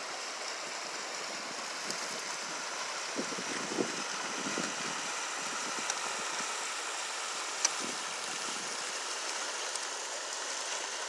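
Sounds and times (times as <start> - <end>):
river water rushing through rapids: 0.0 - 11.0.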